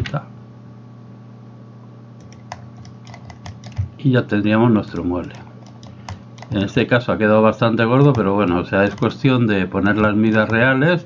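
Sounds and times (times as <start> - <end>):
low steady hum: 0.0 - 11.0
keyboard and mouse clicks: 2.2 - 4.0, 4.8 - 6.8, 8.0 - 9.2, 9.8 - 10.6.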